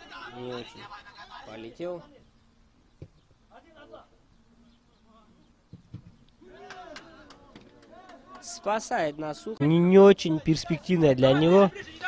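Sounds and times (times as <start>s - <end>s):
footballers calling out: 0.0s - 4.3s, 5.0s - 12.0s.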